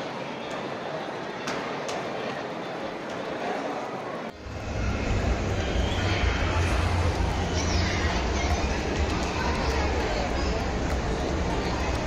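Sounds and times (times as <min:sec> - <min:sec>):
busy indoor mall background noise: 0:00.0 - 0:12.0
steady low rumble: 0:04.4 - 0:12.0.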